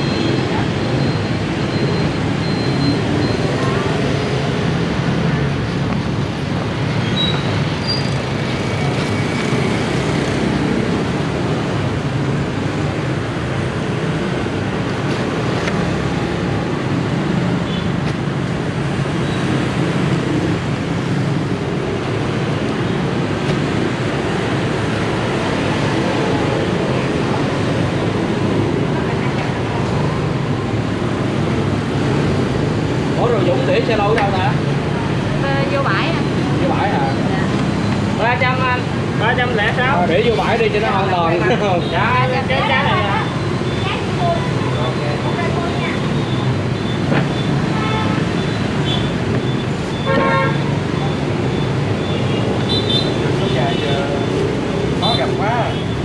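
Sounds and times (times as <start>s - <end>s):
road traffic noise: 0.0s - 56.0s.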